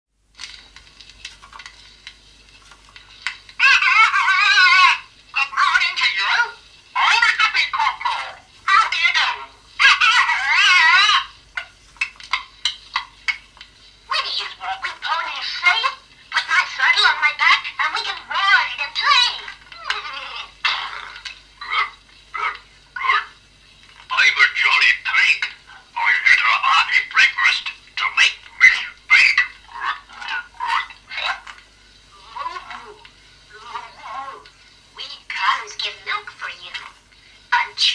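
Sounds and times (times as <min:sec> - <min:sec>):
high thin wavering voice on record: 0:03.6 - 0:11.4, 0:14.1 - 0:23.4, 0:24.1 - 0:31.5, 0:32.1 - 0:37.9.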